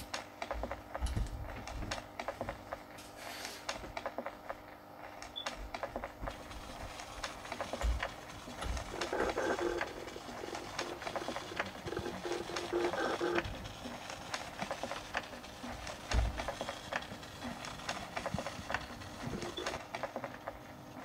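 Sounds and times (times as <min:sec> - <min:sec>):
rapid mechanical clicking: 0:03.6 - 0:21.0
buzzing whir: 0:05.8 - 0:19.8.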